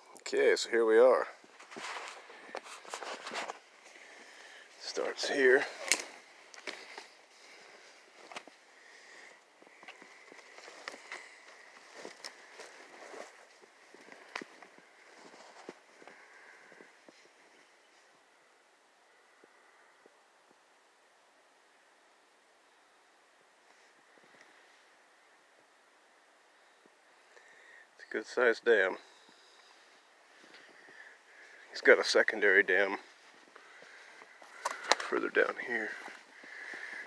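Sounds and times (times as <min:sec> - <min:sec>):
twigs and brush rustling: 0:00.9 - 0:18.1, 0:29.0 - 0:37.0
footsteps crunching in snow: 0:01.4 - 0:17.7.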